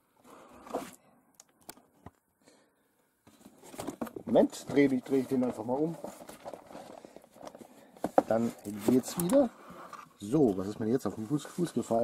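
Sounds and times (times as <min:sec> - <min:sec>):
cardboard box rustling: 0:03.3 - 0:09.5.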